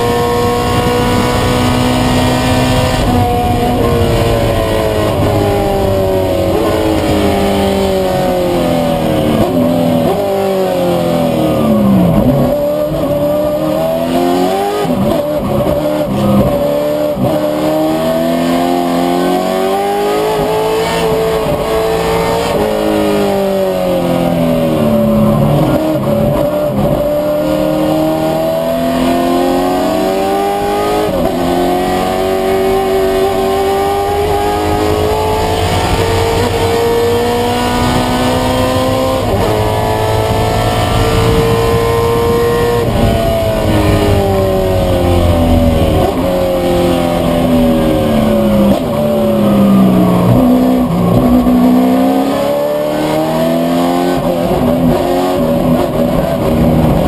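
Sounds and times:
race car engine revving: 0.0s - 57.0s.

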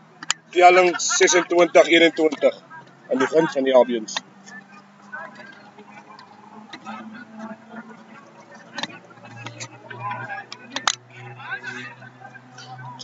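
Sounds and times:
faint voices talking: 0.0s - 13.0s.

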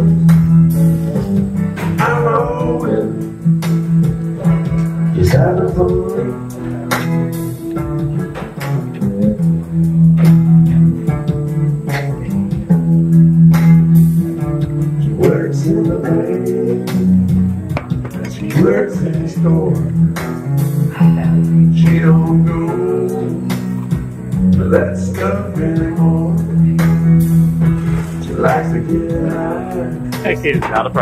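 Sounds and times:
electric guitar strummed chords: 0.0s - 31.0s
man singing into microphone: 1.8s - 3.4s, 4.4s - 7.0s, 15.0s - 17.3s, 18.1s - 20.1s, 20.9s - 23.8s, 24.5s - 27.0s, 27.8s - 31.0s.

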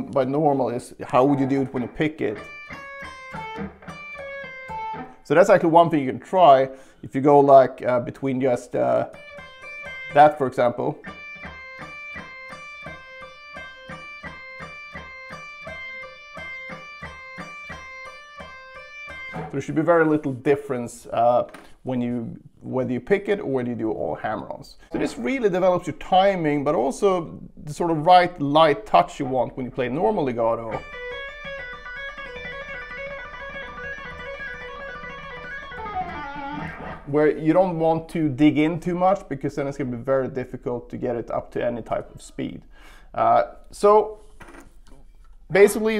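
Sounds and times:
clean electric guitar single notes: 1.2s - 5.3s, 9.1s - 10.2s, 10.9s - 19.6s, 30.7s - 37.1s.

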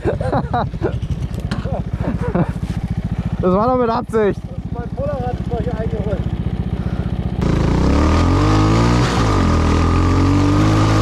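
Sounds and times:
motorcycle engine idling: 0.0s - 8.2s
man talking: 3.4s - 6.2s.

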